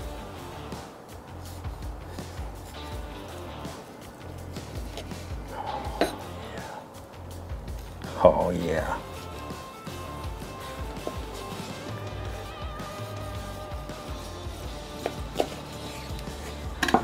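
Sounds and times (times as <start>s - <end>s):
background music with pulsing bass: 0.0s - 17.0s.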